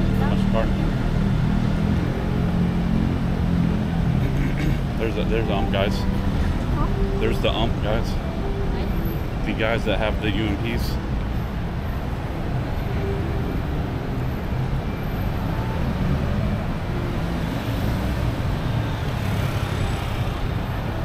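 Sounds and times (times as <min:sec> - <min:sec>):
cars passing on road: 0:00.0 - 0:21.0.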